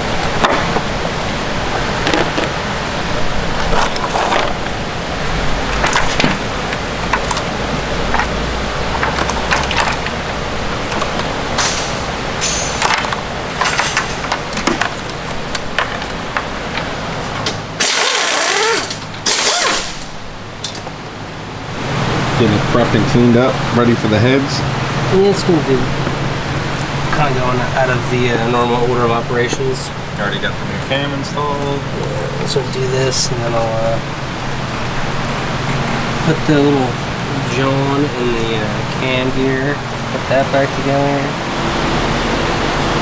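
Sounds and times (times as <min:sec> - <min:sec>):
steady shop hum: 0:00.0 - 0:43.0
ratchet clicking: 0:17.8 - 0:20.2.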